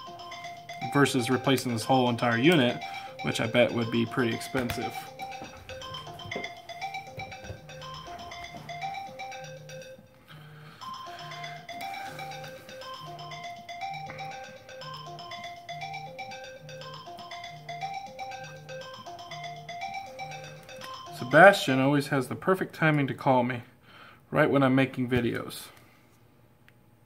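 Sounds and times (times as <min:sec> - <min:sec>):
marimba ringtone melody: 0:00.0 - 0:22.0.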